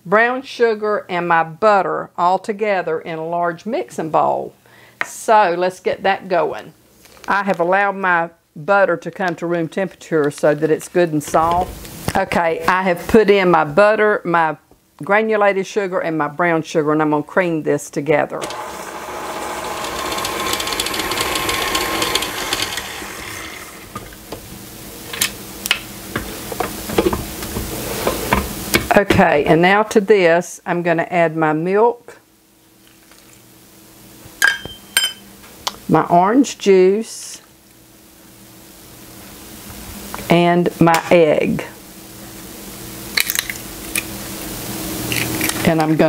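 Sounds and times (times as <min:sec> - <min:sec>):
stand mixer running: 0:18.4 - 0:24.0
egg cracking: 0:43.1 - 0:44.1, 0:45.1 - 0:45.6.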